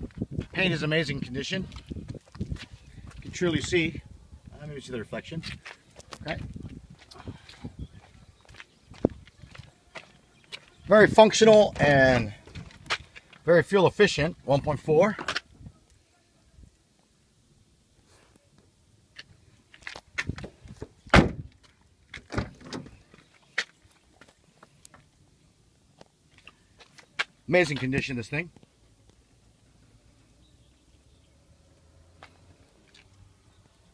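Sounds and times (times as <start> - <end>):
man speaking: 3.2 - 5.5, 10.9 - 12.4, 13.4 - 15.3, 27.5 - 28.5.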